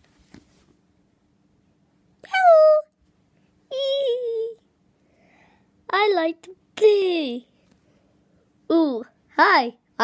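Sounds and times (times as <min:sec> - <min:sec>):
woman's high-pitched puppet call: 0:02.2 - 0:02.9, 0:03.7 - 0:04.6.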